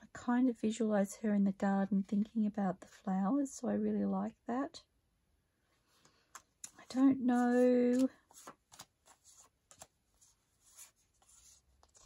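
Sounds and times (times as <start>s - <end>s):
paper cards rustling: 6.1s - 12.0s.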